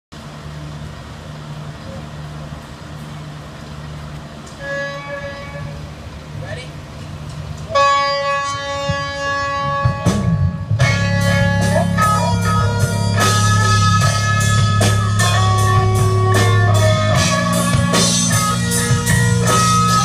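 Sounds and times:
electric guitar sustained notes: 7.7 - 20.0.

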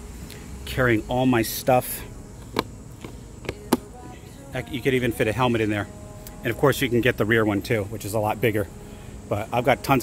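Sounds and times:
faint cicadas buzzing: 0.0 - 10.0.

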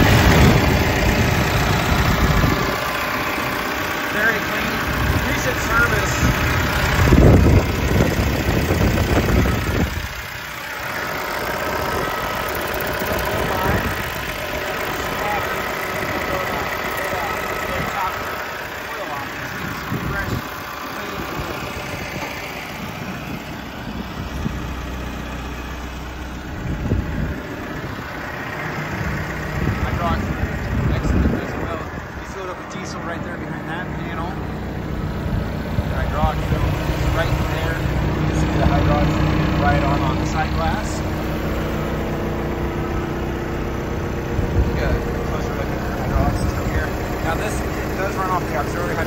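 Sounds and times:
diesel engine idling: 0.0 - 49.0.

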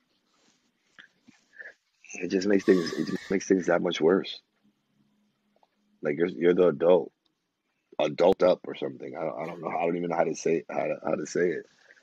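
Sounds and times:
faint room hiss: 0.0 - 12.0
person speaking: 2.1 - 4.3, 8.0 - 11.8.

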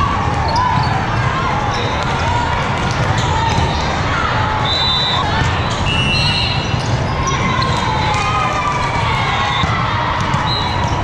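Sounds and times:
volleyballs struck and bouncing: 0.0 - 4.6, 5.2 - 11.0
referee whistle blasts: 4.6 - 6.8.

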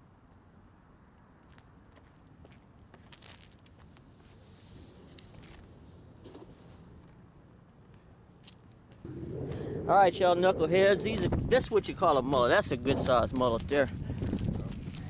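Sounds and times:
cast net ticks and crunches: 3.0 - 4.0, 13.3 - 15.0.

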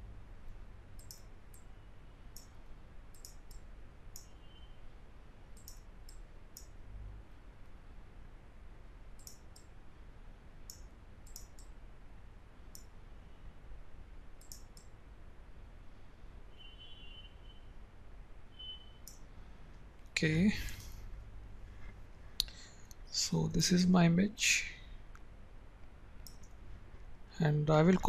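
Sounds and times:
faint low hum: 0.0 - 28.0
computer mouse clicking: 1.0 - 1.7, 2.3 - 4.4, 5.6 - 6.8, 9.2 - 9.7, 10.7 - 11.8, 12.7 - 12.9, 14.4 - 15.0, 26.2 - 26.6.

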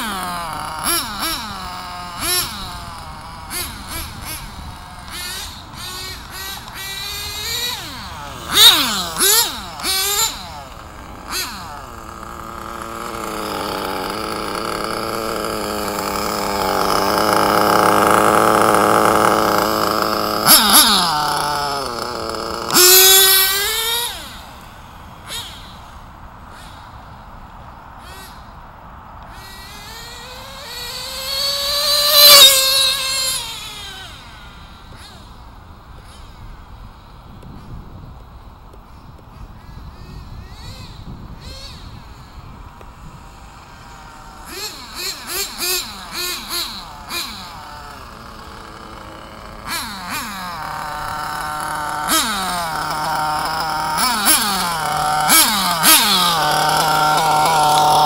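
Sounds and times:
model car engine revving whine: 0.0 - 28.6, 29.2 - 58.0.

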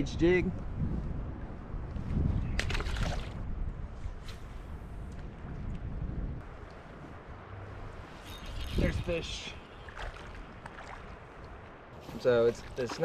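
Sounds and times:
wind rumbling on microphone: 0.0 - 12.0
creek water around a kayak: 6.4 - 13.0.

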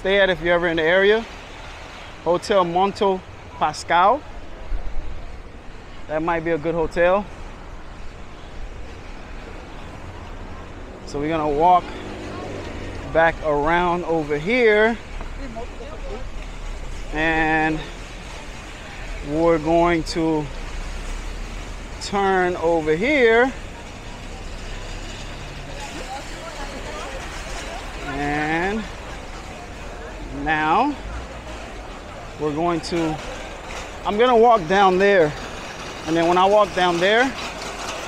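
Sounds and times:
street traffic rumble: 0.0 - 38.0.

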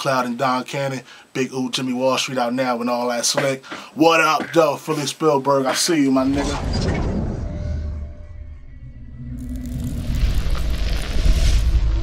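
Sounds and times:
deep rumble: 6.2 - 12.0.

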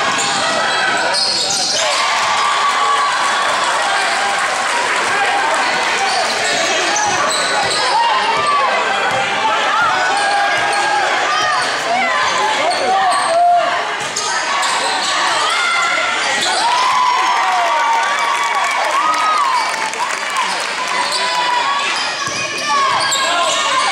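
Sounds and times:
spectators talking and calling out: 0.0 - 23.9
sneaker squeaks: 0.1 - 1.8, 6.1 - 9.2, 14.6 - 16.6, 21.0 - 23.9.

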